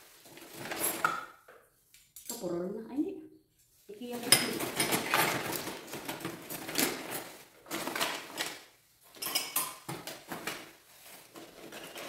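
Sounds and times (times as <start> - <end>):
plastic bag rustling: 0.0 - 1.1, 3.6 - 9.2, 9.8 - 12.0
dishes and glassware clinking: 9.1 - 9.9.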